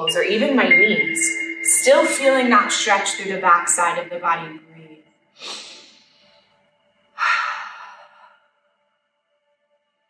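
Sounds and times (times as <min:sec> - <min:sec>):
faint music tones: 0:00.0 - 0:08.2
woman breathing deeply: 0:05.4 - 0:06.5, 0:07.2 - 0:08.5.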